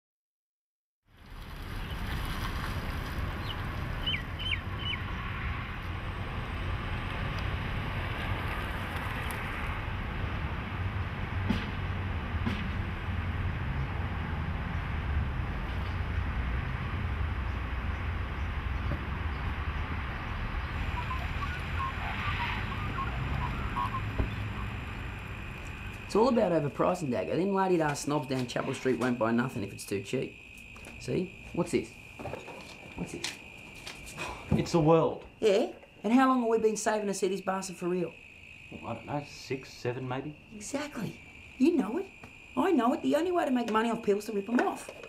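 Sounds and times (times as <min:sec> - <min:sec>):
bird chirps: 0:03.4 - 0:05.2, 0:20.6 - 0:26.1.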